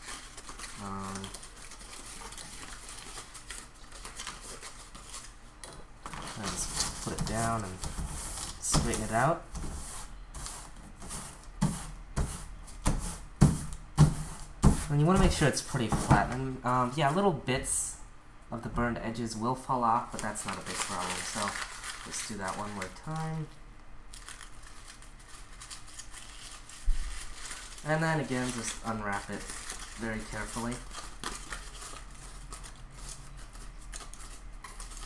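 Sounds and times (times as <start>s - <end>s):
paper rustling and crinkling: 0.0s - 5.4s, 6.0s - 11.8s, 20.0s - 23.5s, 24.1s - 35.0s.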